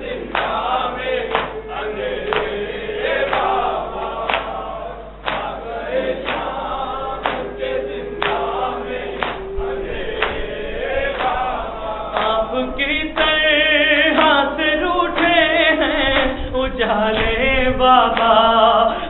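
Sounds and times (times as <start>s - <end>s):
men chanting in chorus: 0.0s - 19.0s.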